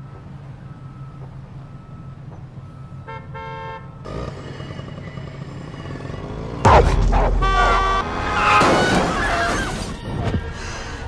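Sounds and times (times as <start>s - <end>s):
street traffic engine hum: 0.0s - 11.0s
vehicle horn honking: 3.0s - 4.1s, 6.7s - 8.5s.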